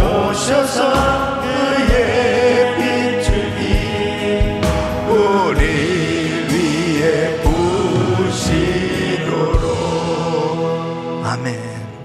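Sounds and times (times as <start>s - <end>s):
man singing into a microphone: 0.0s - 11.9s
sustained instrumental chords: 0.0s - 12.0s.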